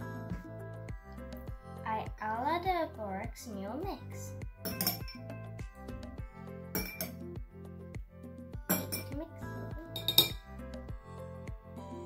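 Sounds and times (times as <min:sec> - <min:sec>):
background music: 0:00.0 - 0:12.0
metal spoon clinking on glass bowl: 0:04.6 - 0:05.2, 0:06.8 - 0:07.2, 0:08.7 - 0:09.2, 0:10.0 - 0:10.4.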